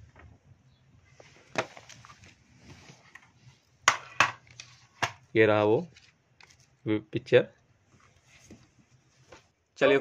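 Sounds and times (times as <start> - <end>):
paper rustling: 1.2 - 3.7.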